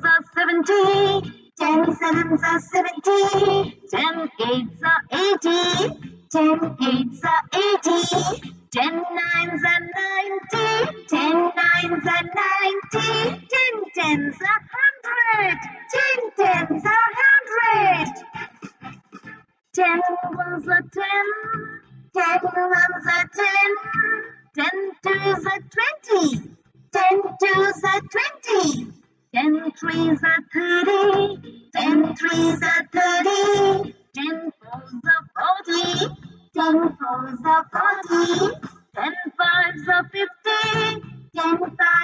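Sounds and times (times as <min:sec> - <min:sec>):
person singing: 0:00.0 - 0:26.4, 0:27.0 - 0:28.8, 0:29.4 - 0:42.0
light children's music: 0:00.0 - 0:42.0.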